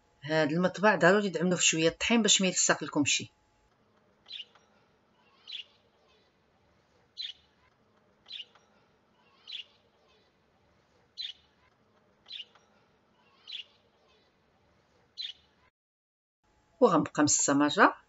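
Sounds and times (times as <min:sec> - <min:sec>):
small bird chirping: 0:04.2 - 0:06.4, 0:07.1 - 0:10.4, 0:11.1 - 0:14.4, 0:15.2 - 0:15.7.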